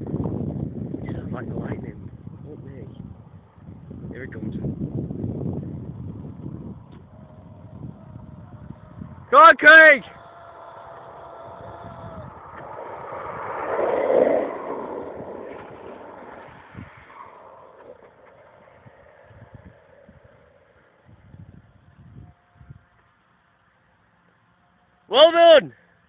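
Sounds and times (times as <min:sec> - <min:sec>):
wheels rolling fast on tarmac: 0:10.0 - 0:22.1.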